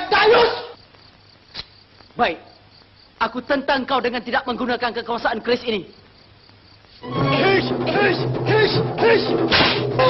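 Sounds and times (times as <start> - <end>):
faint crickets chirping: 0.0 - 10.0.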